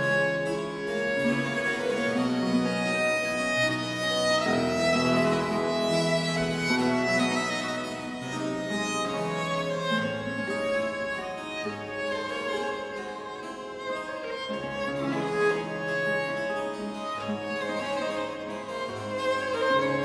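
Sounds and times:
harpsichord accompaniment: 0.0s - 20.0s
violin playing slow melody: 0.0s - 20.0s.

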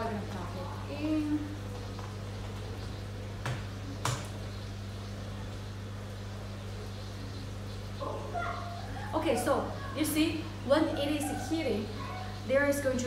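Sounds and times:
low electrical hum: 0.0s - 13.0s.

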